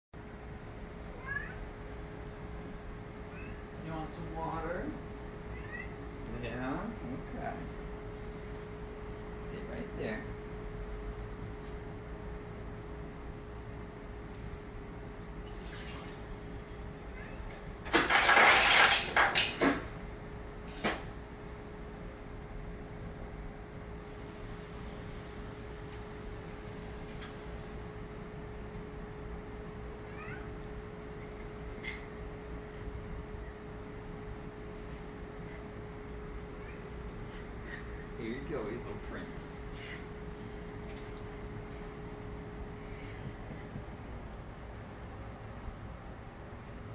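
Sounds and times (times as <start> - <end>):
cat meowing: 1.1 - 1.7, 3.3 - 3.7, 5.5 - 6.0, 17.1 - 17.5, 30.0 - 30.6, 36.5 - 37.0
ice dispenser rattling: 17.9 - 19.8
ice cubes clattering: 18.0 - 19.6.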